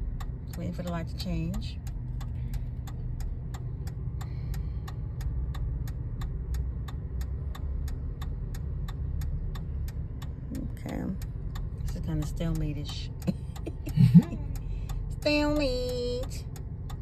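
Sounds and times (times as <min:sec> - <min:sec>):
car engine idling: 0:00.0 - 0:17.0
turn signal ticking: 0:00.0 - 0:17.0.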